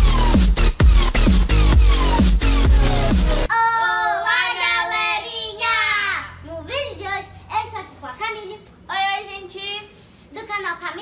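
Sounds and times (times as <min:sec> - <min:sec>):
electronic dance music: 0:00.0 - 0:03.5
girl speaking syllables: 0:03.5 - 0:11.0.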